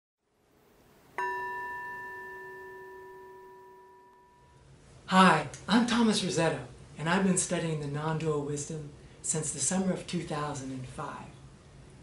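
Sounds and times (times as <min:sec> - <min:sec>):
bell strike ringing: 0:01.2 - 0:04.6.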